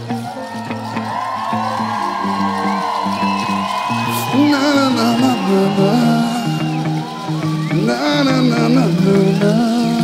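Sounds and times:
reggae band playing: 0.0 - 10.0.

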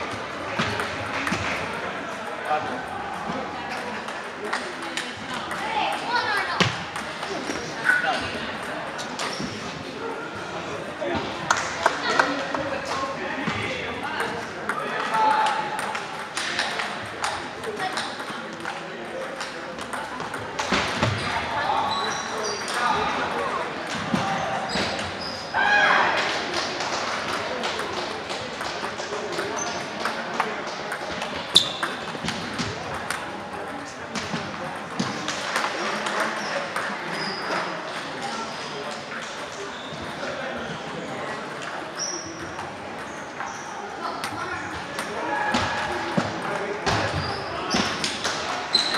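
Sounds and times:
babble of voices: 0.0 - 48.9
table tennis ball hitting rackets and table: 0.1 - 9.6, 14.2 - 25.2, 26.2 - 38.2, 41.6 - 48.9
table tennis balls clicking: 15.8 - 21.1, 26.5 - 38.0.

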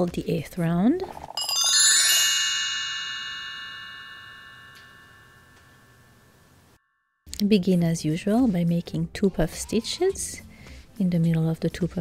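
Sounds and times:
shimmering bell chime: 1.2 - 6.4.

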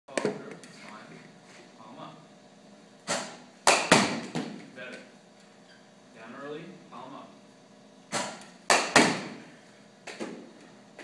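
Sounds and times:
sharp knocks: 8.1 - 9.4.

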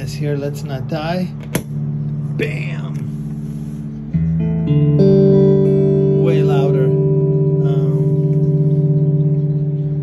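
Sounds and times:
electric guitar notes: 1.3 - 10.0.

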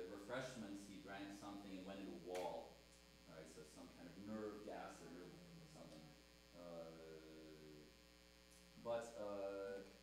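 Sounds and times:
electrical mains hum: 0.0 - 10.0
man saying uhh: 4.1 - 6.0, 6.6 - 7.9.

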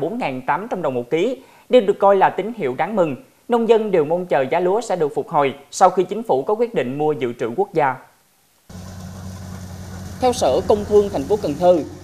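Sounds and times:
combine harvester diesel engine: 8.7 - 12.0.

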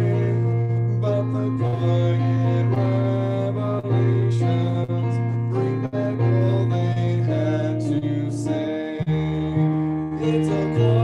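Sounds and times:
acoustic guitar: 0.0 - 11.0
person singing: 0.0 - 11.0
steady bass: 0.0 - 11.0.

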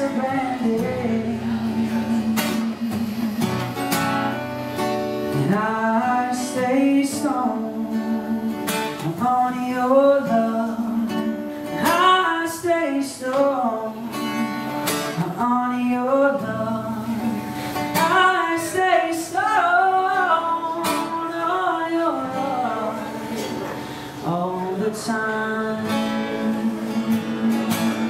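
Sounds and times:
man singing: 0.0 - 4.0, 5.3 - 28.0
acoustic guitar: 0.0 - 28.0.

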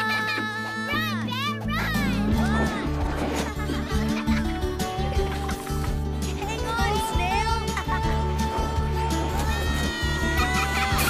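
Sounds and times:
film score music: 0.9 - 11.0
children calling and whooping: 6.5 - 11.0.

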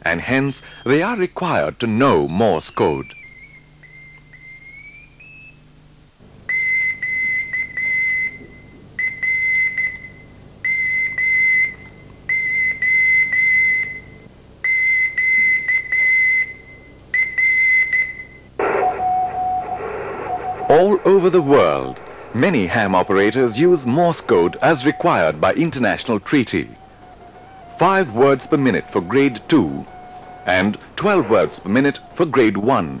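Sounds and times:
radio hiss: 0.1 - 3.3, 18.6 - 33.0
morse code beeping: 17.2 - 32.2
low steady tone: 18.1 - 32.8.

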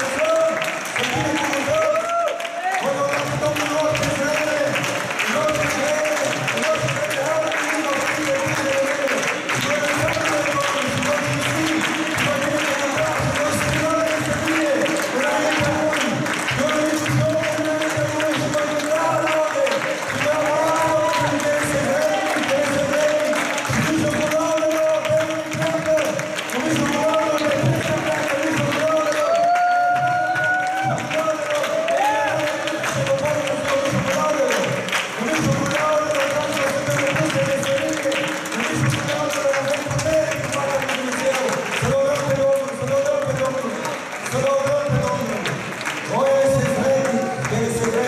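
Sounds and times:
congregation praying aloud: 0.0 - 48.0.

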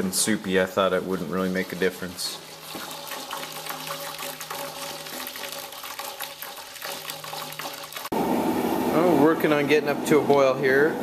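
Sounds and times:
liquid pouring and splashing: 0.0 - 8.2.

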